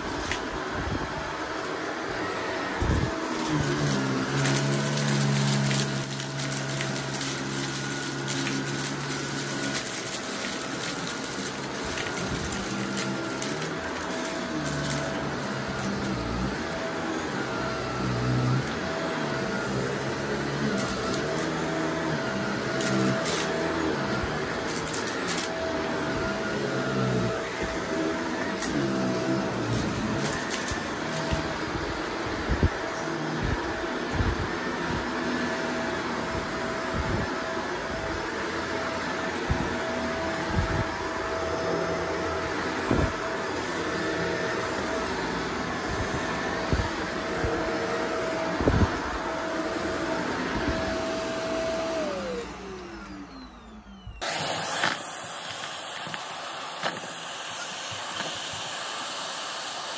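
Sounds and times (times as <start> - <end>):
vacuum cleaner running: 0.0 - 59.9.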